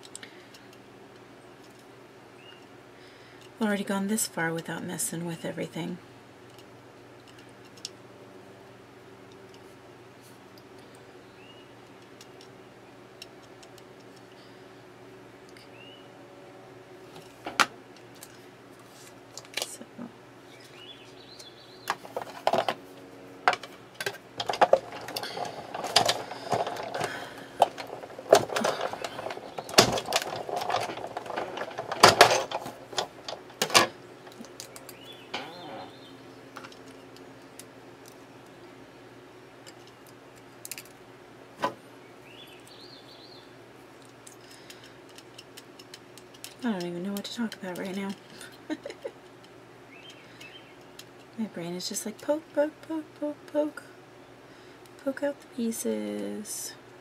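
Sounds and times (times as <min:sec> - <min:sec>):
faint steady hum: 0:00.0 - 0:57.0
metal plates handled clattering: 0:23.5 - 0:35.9.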